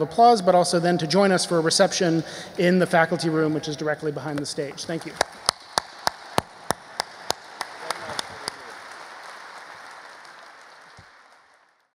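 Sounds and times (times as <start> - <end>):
loud close single claps: 5.0 - 11.5
audience applauding: 5.1 - 11.9.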